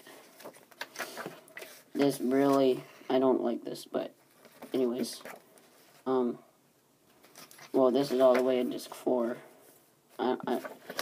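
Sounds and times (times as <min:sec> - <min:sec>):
cardboard and paper rustling: 0:00.0 - 0:02.8, 0:04.3 - 0:06.0, 0:07.2 - 0:08.9, 0:10.2 - 0:11.0.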